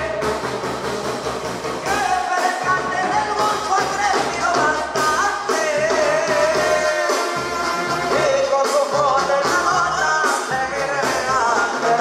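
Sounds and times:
band playing dance music: 0:00.0 - 0:12.0
person singing: 0:01.8 - 0:12.0.

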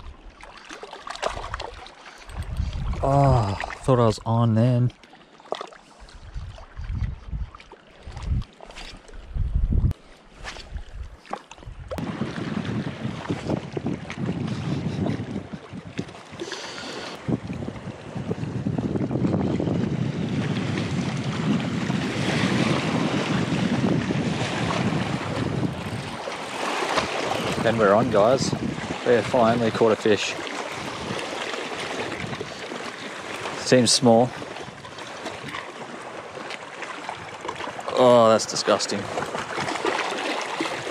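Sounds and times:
wind buffeting microphone: 0:01.3 - 0:04.3, 0:06.0 - 0:33.6, 0:34.2 - 0:37.9
wind rushing: 0:02.3 - 0:03.6, 0:09.2 - 0:10.0
small waves washing against rocks: 0:20.3 - 0:40.9.

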